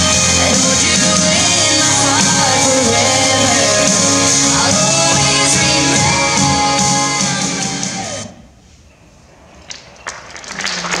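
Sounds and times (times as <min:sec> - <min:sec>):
recorded pop song: 0:00.0 - 0:08.4
audience applause: 0:10.0 - 0:11.0.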